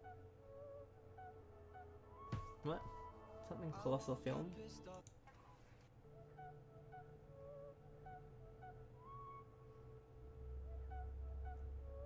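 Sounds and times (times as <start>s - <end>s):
low hum: 6.0s - 12.0s.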